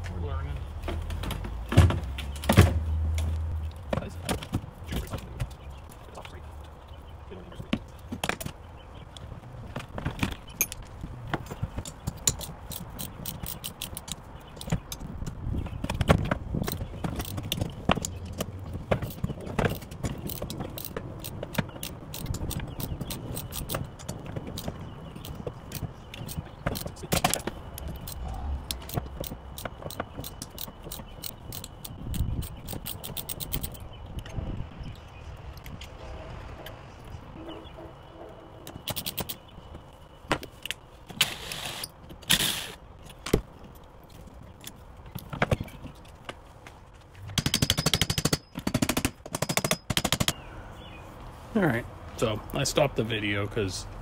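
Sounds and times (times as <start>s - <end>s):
ratchet wrench clicking: 12.2s - 14.7s, 20.2s - 23.8s, 28.0s - 33.8s.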